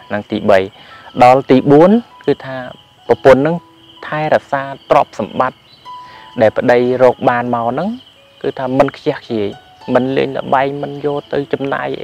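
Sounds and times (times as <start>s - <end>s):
man talking: 0.0s - 5.6s, 6.3s - 12.0s
insects chirring: 0.0s - 12.0s.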